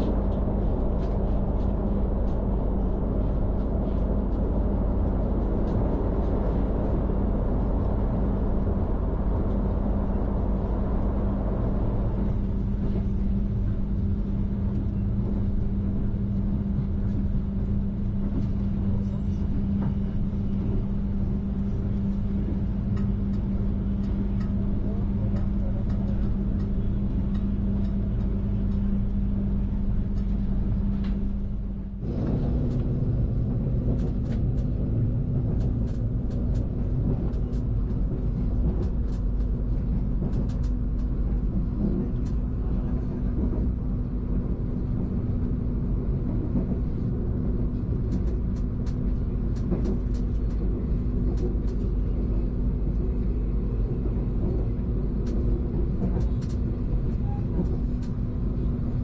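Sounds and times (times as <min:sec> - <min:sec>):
train rumbling: 0:00.0 - 0:59.0
light clicks and rattles: 0:21.9 - 0:29.2, 0:32.2 - 0:43.8, 0:46.2 - 0:58.9.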